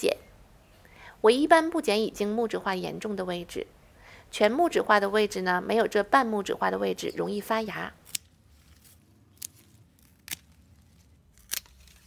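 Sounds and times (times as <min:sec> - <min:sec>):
pruning shears snipping stems: 0:08.0 - 0:10.6, 0:11.3 - 0:12.0.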